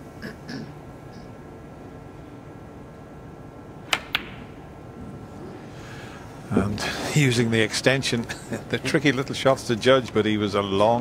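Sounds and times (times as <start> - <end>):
snooker balls clicking: 3.9 - 4.6.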